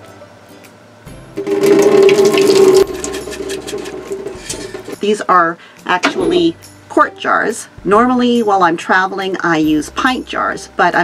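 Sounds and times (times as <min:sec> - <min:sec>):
water pouring down a drain: 0:01.4 - 0:04.5.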